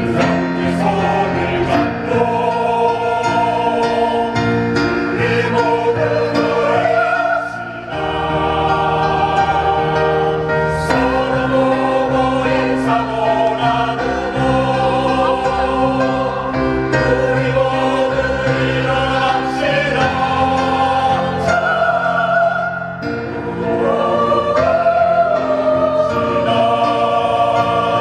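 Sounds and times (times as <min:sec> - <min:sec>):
mixed choir singing: 0:00.0 - 0:28.0.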